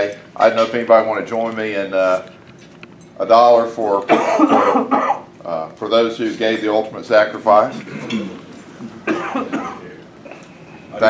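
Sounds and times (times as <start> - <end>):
person coughing: 4.1 - 5.2, 9.0 - 10.4.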